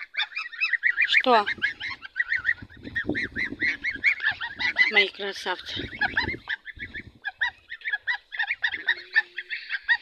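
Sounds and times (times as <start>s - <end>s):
young geese peeping: 0.0s - 10.0s.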